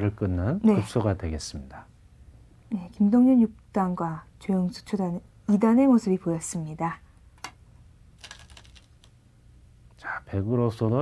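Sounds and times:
go stones clicking in a bowl: 8.2s - 9.2s.

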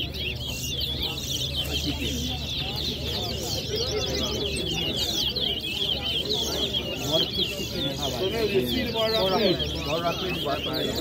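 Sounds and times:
finches twittering: 0.0s - 11.0s
murmur of crowd voices: 0.0s - 11.0s.

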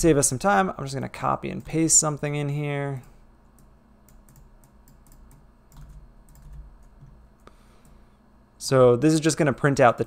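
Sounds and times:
computer keyboard clicks: 3.6s - 7.1s.

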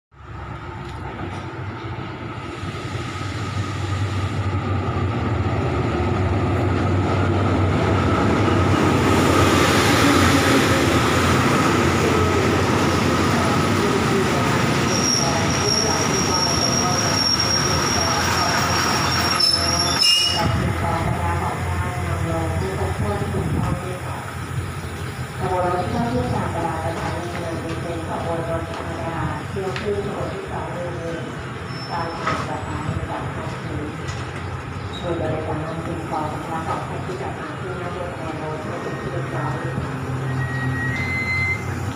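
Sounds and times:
diesel train running: 0.2s - 41.9s
high brake squeal: 18.9s - 20.5s, 40.2s - 41.9s.

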